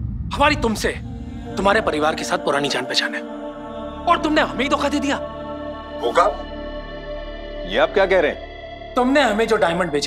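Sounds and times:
dramatic music with held tones: 0.0s - 10.0s.

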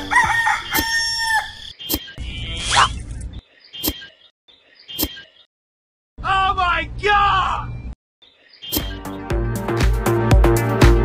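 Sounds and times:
person shouting: 6.2s - 7.6s.

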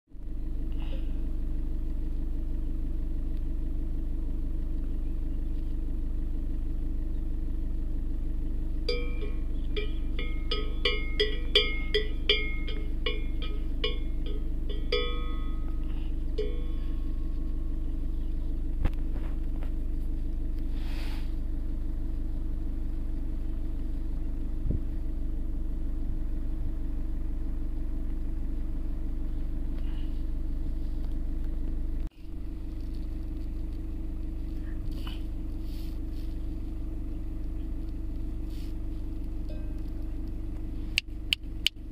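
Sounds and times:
car engine idling: 0.2s - 41.9s
cowbell clanking: 8.9s - 17.8s, 39.5s - 40.1s.

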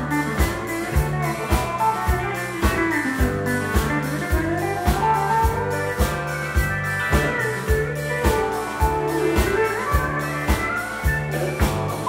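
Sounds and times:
drum kit beat: 0.0s - 12.0s
electric guitar: 0.0s - 12.0s
pedal steel guitar sliding notes: 0.0s - 12.0s.

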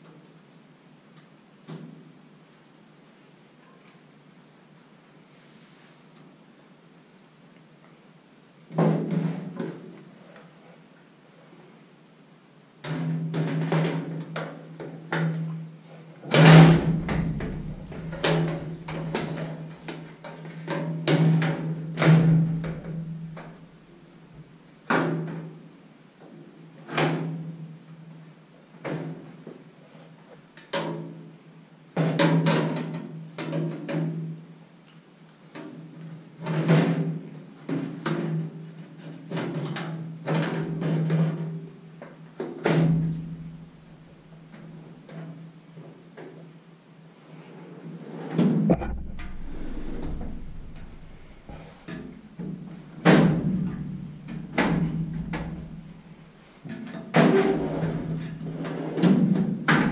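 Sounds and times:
metal drawer knocking and clanking: 16.4s - 19.7s, 48.7s - 52.1s
low ring of metal cabinet: 16.4s - 19.8s, 22.2s - 23.9s, 48.7s - 56.6s.

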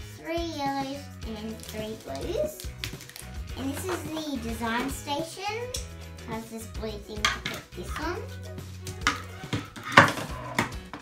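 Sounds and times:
plastic toy parts clattering: 1.6s - 4.4s.

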